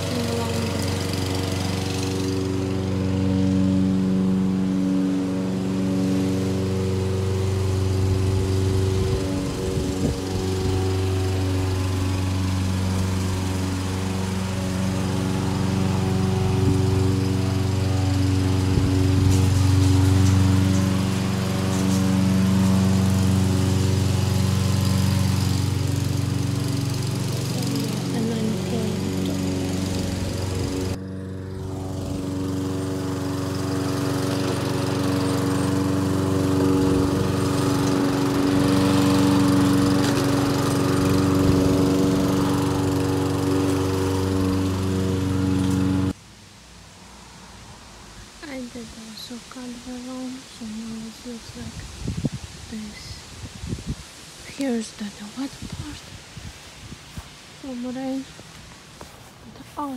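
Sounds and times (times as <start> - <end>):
lawn mower engine running: 0.0 - 59.9.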